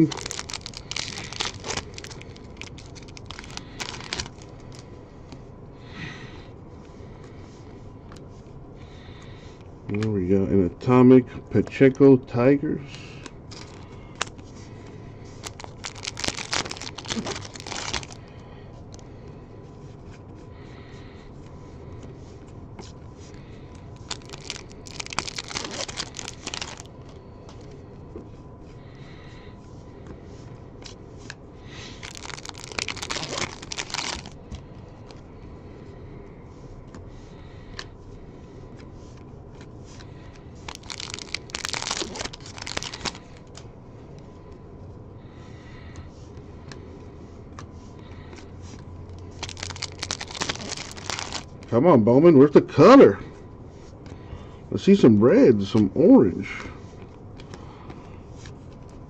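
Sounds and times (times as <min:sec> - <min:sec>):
wrappers crinkling and tearing: 0:00.0 - 0:04.8, 0:13.5 - 0:14.4, 0:15.3 - 0:19.0, 0:23.8 - 0:27.2, 0:31.7 - 0:35.3, 0:39.9 - 0:43.6, 0:48.8 - 0:51.8
cards being handled: 0:00.0 - 0:05.4, 0:12.9 - 0:19.0, 0:22.0 - 0:28.4, 0:30.8 - 0:35.3, 0:38.7 - 0:44.6, 0:47.5 - 0:51.7, 0:56.5 - 0:59.0.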